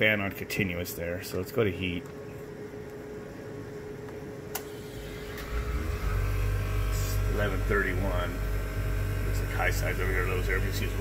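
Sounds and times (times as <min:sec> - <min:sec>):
compressor low hum: 0:00.0 - 0:11.0
fan running: 0:00.0 - 0:11.0.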